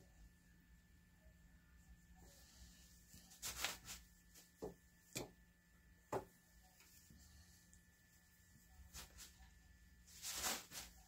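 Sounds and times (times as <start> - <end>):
rustle of threads: 2.2 - 4.6, 6.7 - 11.0.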